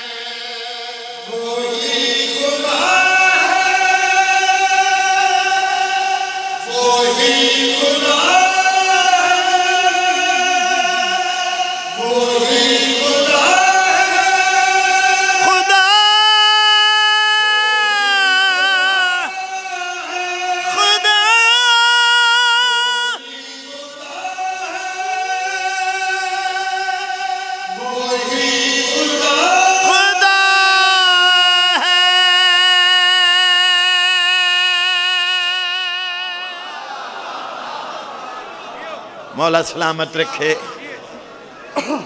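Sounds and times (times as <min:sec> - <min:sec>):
man singing long high note: 0:00.0 - 0:36.8.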